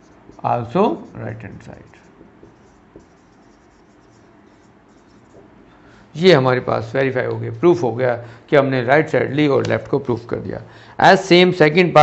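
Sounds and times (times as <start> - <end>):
marker writing on whiteboard: 0.0 - 5.6.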